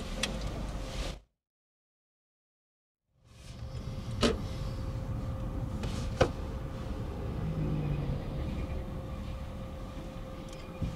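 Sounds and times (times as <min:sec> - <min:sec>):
car engine and tyre rumble: 0:00.0 - 0:01.2, 0:03.2 - 0:10.9.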